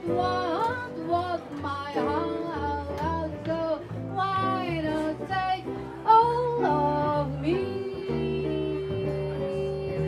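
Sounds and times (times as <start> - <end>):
plucked upright bass: 0.0 - 10.0
woman singing: 0.0 - 10.0.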